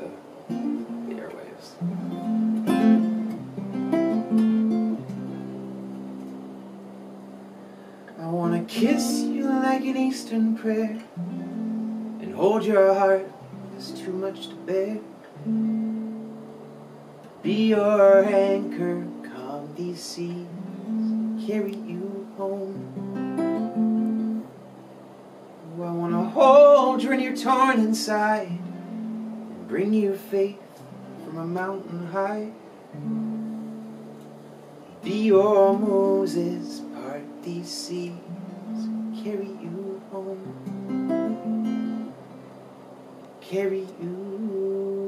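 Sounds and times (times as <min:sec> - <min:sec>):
acoustic guitar strumming: 0:00.0 - 0:45.0
person singing: 0:08.2 - 0:11.6, 0:12.2 - 0:15.1, 0:17.4 - 0:23.3, 0:25.7 - 0:28.9, 0:31.2 - 0:32.6, 0:34.9 - 0:41.6, 0:43.4 - 0:45.0.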